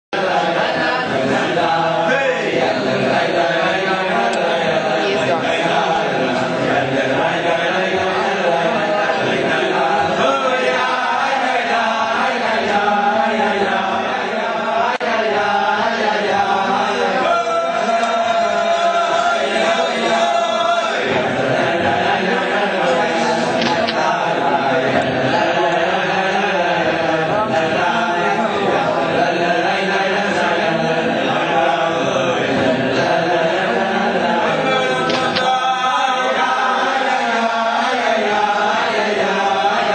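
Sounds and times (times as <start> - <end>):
group of voices chanting: 0.1 - 39.9.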